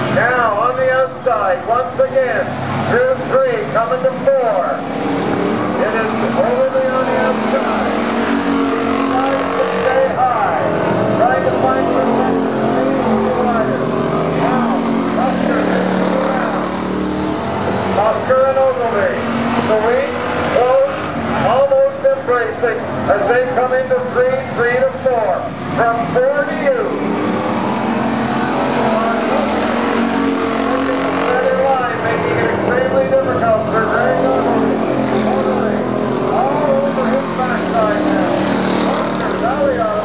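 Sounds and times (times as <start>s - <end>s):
race car engines revving: 0.0s - 40.0s.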